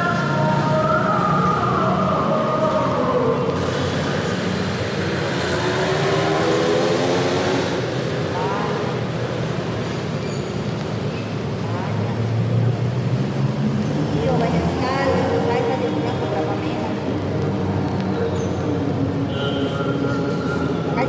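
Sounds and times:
ambient noise music: 0:00.0 - 0:10.0, 0:11.4 - 0:21.0.

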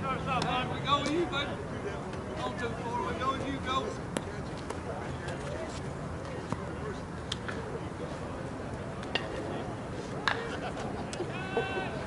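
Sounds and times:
distant voices of players: 0:00.0 - 0:12.0.

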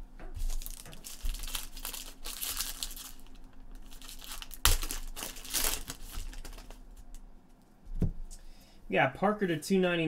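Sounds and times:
plastic wrappers crinkling: 0:00.4 - 0:07.2.

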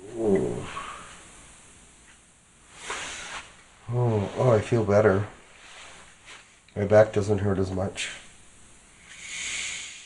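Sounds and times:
man groaning: 0:00.0 - 0:01.1.

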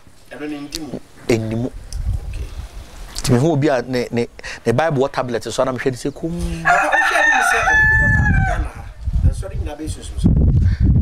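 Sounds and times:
man's voice: 0:03.2 - 0:07.9
rooster crowing: 0:06.5 - 0:09.0.

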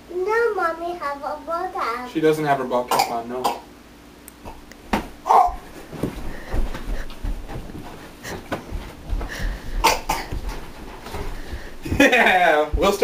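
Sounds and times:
footsteps on floor: 0:04.4 - 0:13.0.

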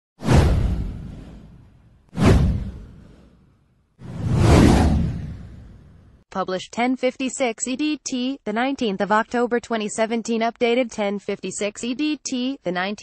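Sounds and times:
whoosh sound effects: 0:00.2 - 0:03.4, 0:04.0 - 0:06.1.

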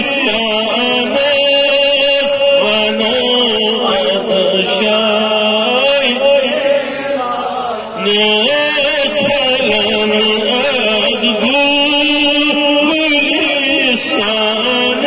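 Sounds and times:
man singing into a microphone: 0:00.0 - 0:15.0.

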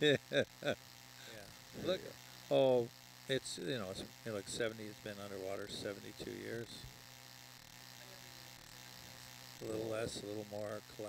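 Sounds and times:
faint electrical hum: 0:00.0 - 0:11.0
light hiss: 0:00.0 - 0:11.0.

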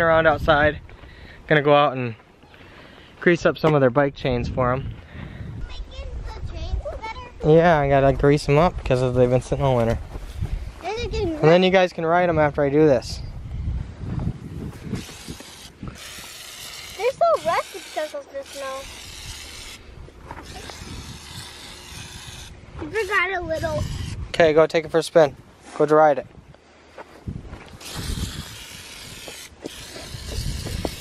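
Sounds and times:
spray can hissing: 0:15.0 - 0:19.8, 0:20.4 - 0:24.2, 0:27.8 - 0:31.0.

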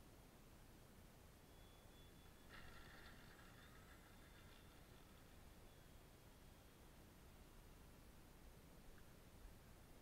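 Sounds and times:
faint high-pitched sound: 0:01.4 - 0:07.7.

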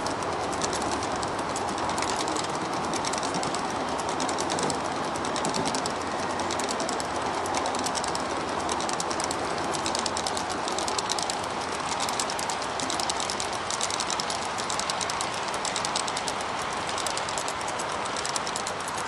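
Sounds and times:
model train wheels clicking on rails: 0:00.0 - 0:19.0.

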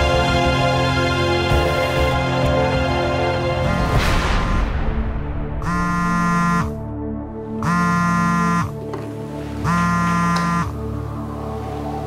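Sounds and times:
phone buzzing on wooden table: 0:05.6 - 0:06.7, 0:07.6 - 0:08.8, 0:09.7 - 0:10.8.

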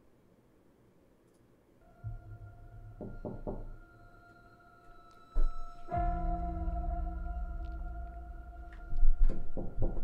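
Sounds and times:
low eerie drone: 0:01.8 - 0:10.0
knocks on a door: 0:03.0 - 0:03.7, 0:09.2 - 0:10.0.

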